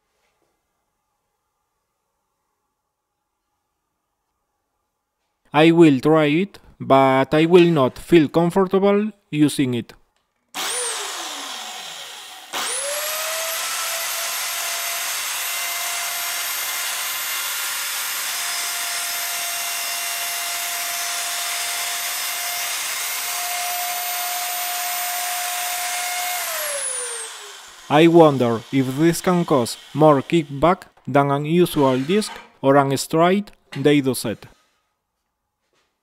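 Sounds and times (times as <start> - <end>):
saw blade cutting wood: 10.6 - 24.2, 24.9 - 31.0, 31.6 - 32.5
electric drill motor whining: 10.6 - 30.6.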